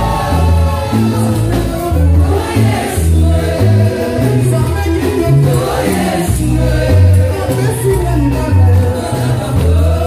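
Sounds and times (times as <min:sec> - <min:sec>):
bass line: 0:00.0 - 0:10.0
church choir singing gospel: 0:00.0 - 0:10.0.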